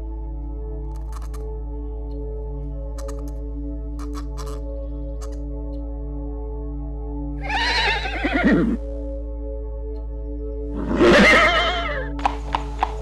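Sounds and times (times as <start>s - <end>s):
soft background music: 0.0s - 13.0s
sharp clicks: 0.9s - 1.5s, 2.9s - 3.4s, 4.0s - 5.4s, 12.1s - 13.0s
horse whinnies: 7.4s - 8.8s, 10.8s - 12.3s.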